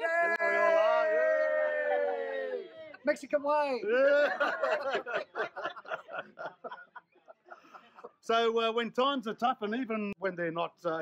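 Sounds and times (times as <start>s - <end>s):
people cheering yay: 0.0s - 3.1s.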